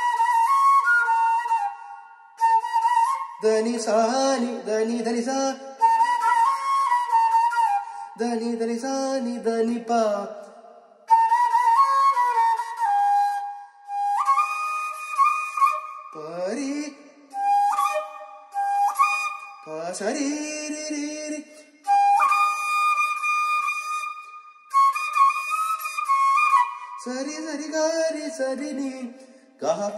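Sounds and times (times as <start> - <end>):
bamboo flute playing long notes: 0.0 - 3.6, 5.8 - 8.1, 11.1 - 16.2, 17.3 - 20.0, 21.8 - 27.2.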